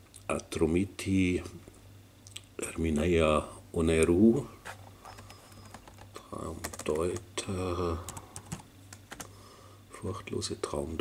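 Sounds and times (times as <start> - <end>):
computer keyboard typing: 5.1 - 7.3, 8.0 - 9.3.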